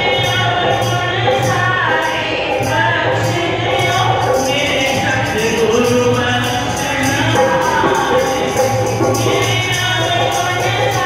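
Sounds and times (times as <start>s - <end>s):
hand percussion beat: 0.0s - 11.0s
harmonium: 0.0s - 11.0s
women singing devotional song: 0.0s - 11.0s.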